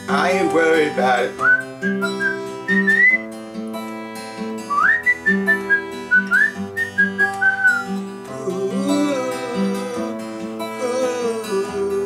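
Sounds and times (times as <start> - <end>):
acoustic guitar chords: 0.0 - 12.0
man whistling a melody: 1.4 - 3.4, 4.7 - 12.0.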